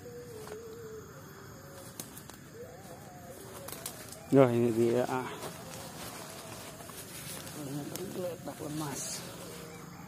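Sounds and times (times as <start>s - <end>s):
twigs and leaves crunching underfoot: 0.0s - 1.0s, 1.6s - 10.0s
dove cooing: 0.0s - 10.0s.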